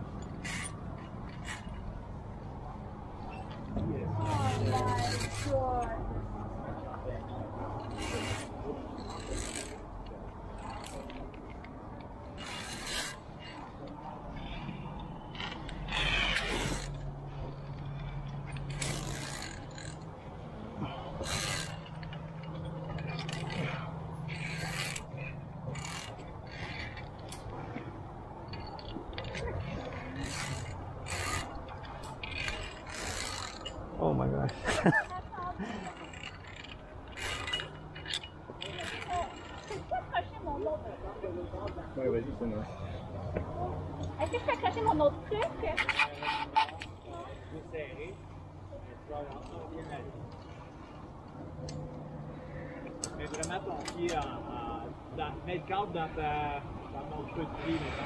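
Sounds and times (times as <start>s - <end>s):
climbing gear clatter: 0.0s - 6.0s, 7.6s - 40.1s, 44.1s - 48.2s, 49.2s - 54.8s
carabiners clicking on steel cable: 0.1s - 2.0s, 3.3s - 5.6s, 7.8s - 39.9s, 45.7s - 47.2s, 49.3s - 54.4s.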